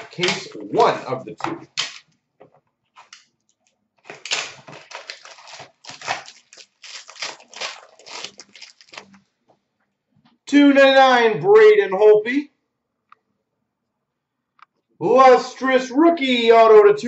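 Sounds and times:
wrapper tearing and crinkling: 4.0 - 9.3.

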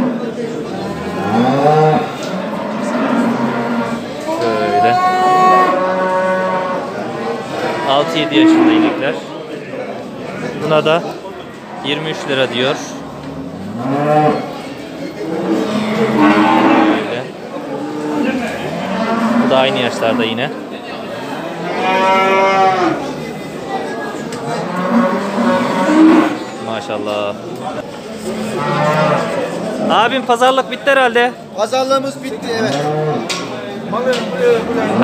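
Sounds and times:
cattle mooing: 0.8 - 9.3, 11.5 - 20.6, 21.6 - 23.2, 24.5 - 26.6, 28.4 - 30.0, 32.6 - 33.3.

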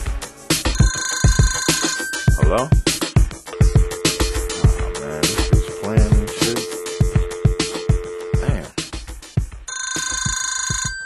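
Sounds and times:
hip-hop beat with heavy kicks: 0.0 - 9.6
telephone trilling ring: 0.6 - 2.4, 3.5 - 8.5, 9.7 - 11.0.

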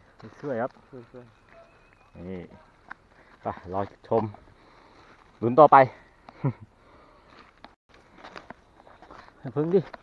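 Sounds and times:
footsteps crunching dry leaves: 7.3 - 10.0.

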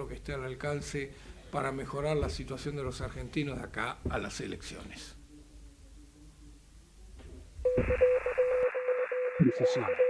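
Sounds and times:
static-like radio noise: 7.6 - 10.0.

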